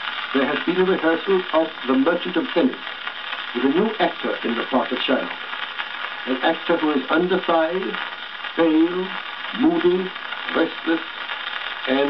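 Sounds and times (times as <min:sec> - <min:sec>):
record surface hiss and crackle: 0:00.0 - 0:12.0
man reciting on a record: 0:00.3 - 0:05.5, 0:06.2 - 0:11.2, 0:11.8 - 0:12.0.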